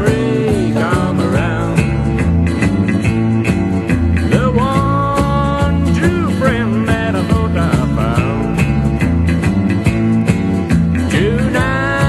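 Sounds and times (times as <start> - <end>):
country band music: 0.0 - 12.0.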